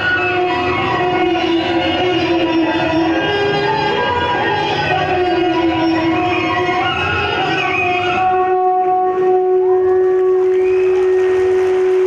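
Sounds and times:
horn holding a long note: 0.2s - 12.0s.

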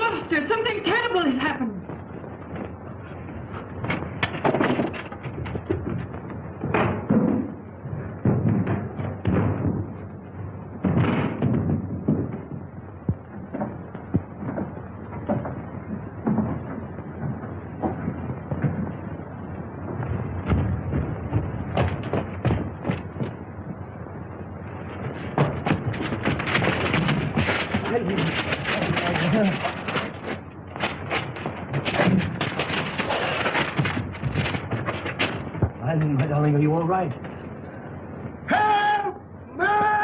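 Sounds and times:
thuds and knocks: 1.8s - 36.4s.

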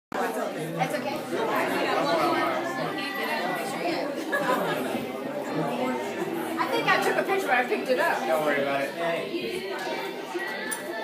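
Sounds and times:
crowd of people talking: 0.1s - 11.0s.

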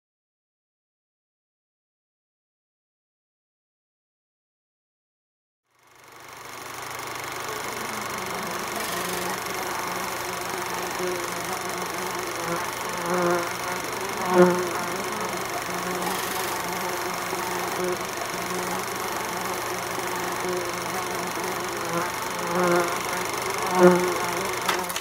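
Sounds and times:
aquarium pump humming: 5.9s - 25.0s.

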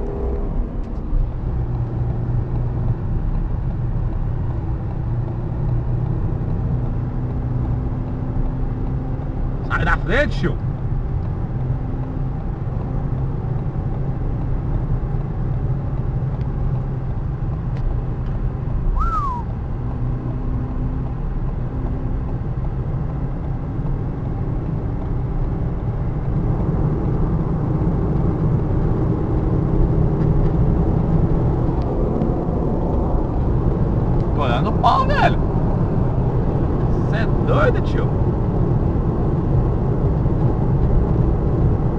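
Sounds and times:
car engine and tyre rumble: 0.0s - 41.9s
short falling squeak: 19.0s - 19.4s.

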